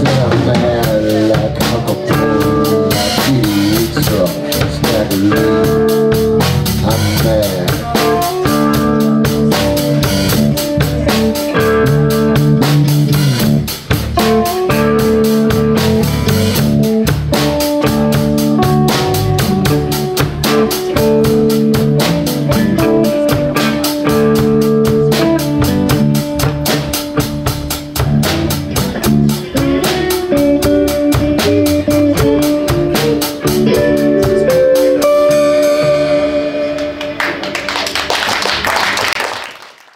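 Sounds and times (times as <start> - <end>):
bass guitar: 0.0 - 38.7
electric guitars: 0.0 - 39.0
drum kit beat: 0.0 - 39.3.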